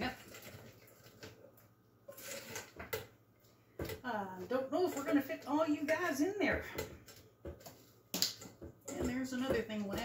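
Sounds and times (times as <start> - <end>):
spatula scraping steel bowl: 2.1 - 3.0, 4.5 - 10.0
utensil knocking bowl: 4.8 - 10.0.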